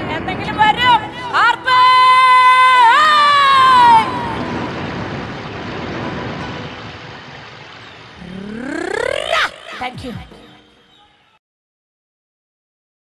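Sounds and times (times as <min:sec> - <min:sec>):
person singing high note: 0:08.2 - 0:10.6
crowd noise: 0:08.2 - 0:11.2.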